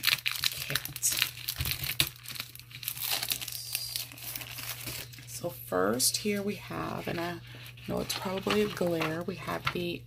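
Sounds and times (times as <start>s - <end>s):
plastic packaging crinkling: 0.0s - 5.5s, 6.2s - 9.8s.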